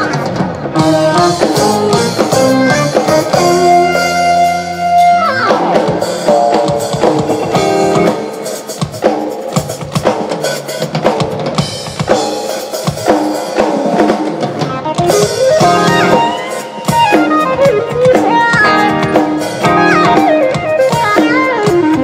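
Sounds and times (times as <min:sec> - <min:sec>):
live band music: 0:00.0 - 0:22.0.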